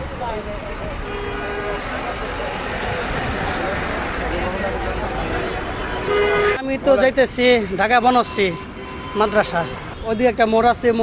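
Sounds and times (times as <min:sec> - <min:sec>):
crowd of men talking: 0:00.0 - 0:11.0
traffic rumble: 0:00.0 - 0:11.0
vehicle horn toot: 0:01.0 - 0:02.0, 0:05.4 - 0:06.6, 0:07.6 - 0:10.3.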